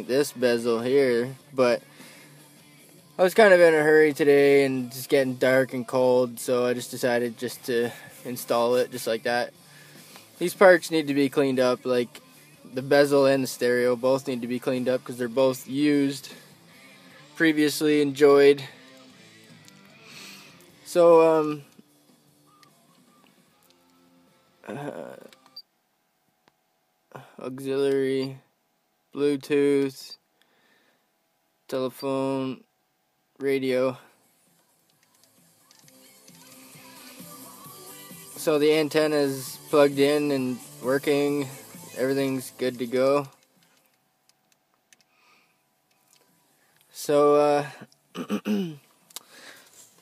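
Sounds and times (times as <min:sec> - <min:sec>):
faint car stereo music: 0:00.0 - 0:30.4, 0:31.0 - 0:50.0.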